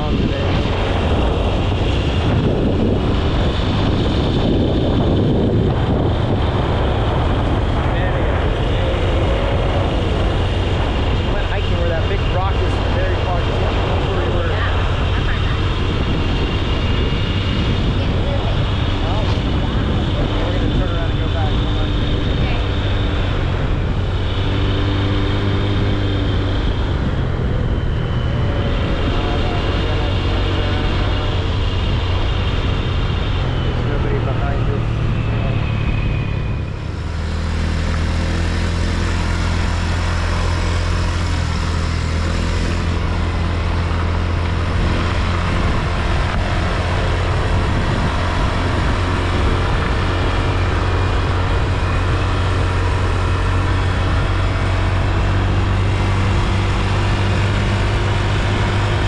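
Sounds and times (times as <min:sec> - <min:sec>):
vehicle engine drone: 0:00.0 - 0:59.0.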